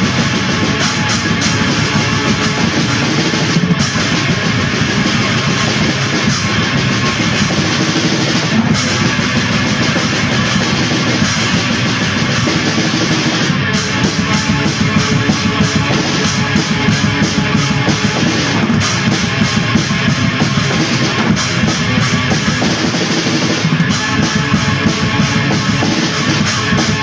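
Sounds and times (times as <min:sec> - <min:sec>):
distorted guitar: 0:00.0 - 0:27.0
drum kit playing: 0:00.0 - 0:27.0.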